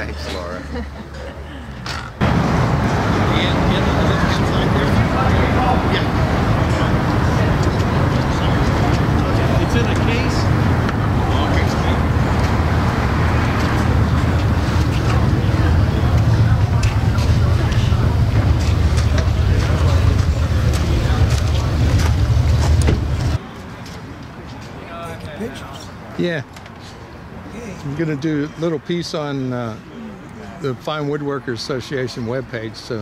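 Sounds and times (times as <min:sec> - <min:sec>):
background chatter: 0:00.0 - 0:33.0
low outdoor rumble: 0:02.2 - 0:23.4.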